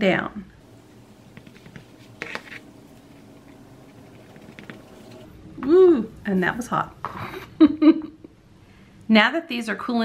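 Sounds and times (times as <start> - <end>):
rustling and light taps: 1.3 - 5.2.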